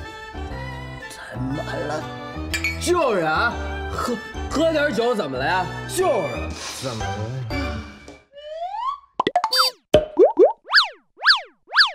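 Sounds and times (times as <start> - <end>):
cartoon boings: 8.4 - 11.9
cartoon pops and clicks: 9.2 - 11.9
rising whistle-like glides: 10.7 - 11.9.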